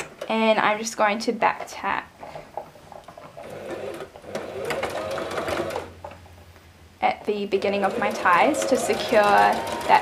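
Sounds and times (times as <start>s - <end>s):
sewing machine stitching: 3.4s - 5.9s, 7.6s - 10.0s.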